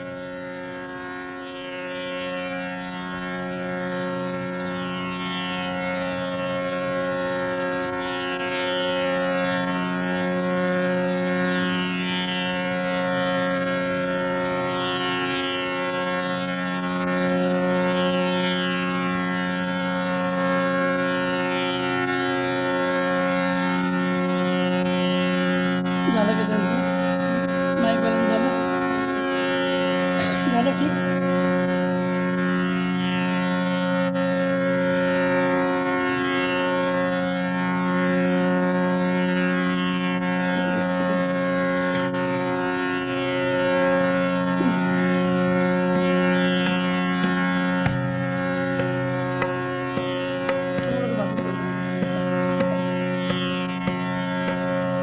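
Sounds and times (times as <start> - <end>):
tanpura drone: 0.0 - 55.0.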